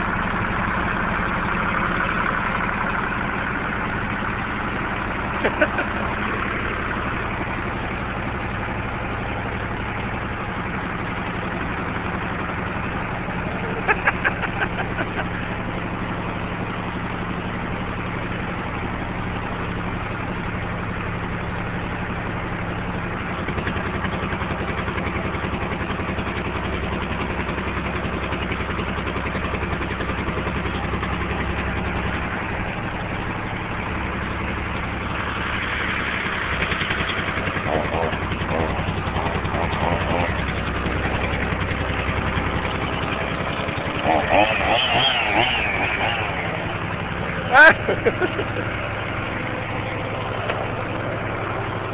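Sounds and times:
engine running steadily: 0.0 - 51.9
people calling out: 44.3 - 48.3.

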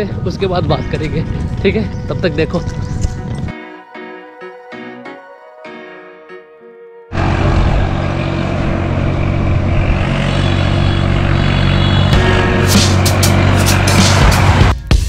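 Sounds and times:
road noise: 0.0 - 3.5, 7.1 - 14.8
vehicle engine running: 7.1 - 14.8
hip-hop beat: 12.2 - 15.0.

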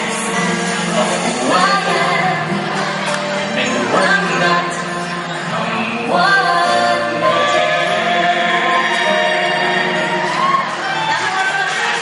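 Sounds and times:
woman and man singing a duet: 0.0 - 2.8, 3.5 - 10.6
backing music: 0.0 - 12.0.

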